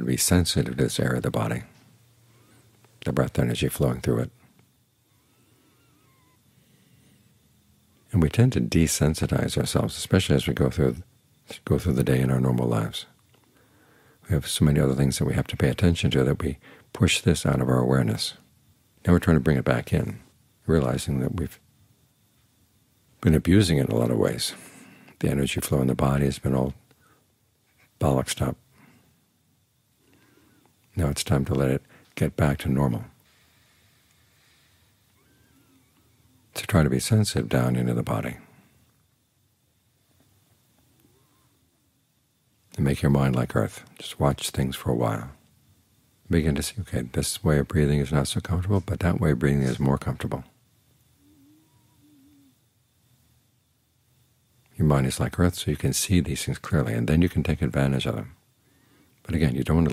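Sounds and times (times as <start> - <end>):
faint room hiss: 0.0 - 59.9
faint wavering chirp: 4.4 - 8.2, 33.3 - 36.5, 51.1 - 52.8
faint wavering high tone: 51.2 - 52.6.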